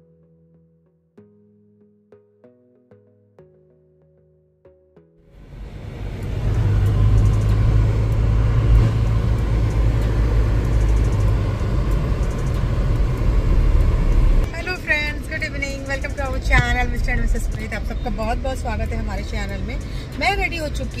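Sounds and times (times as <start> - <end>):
car engine and road noise: 5.2 - 21.0.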